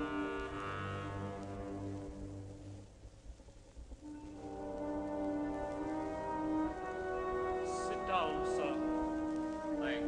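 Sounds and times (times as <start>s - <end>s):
orchestral held chords: 0.0s - 2.9s, 4.0s - 10.0s.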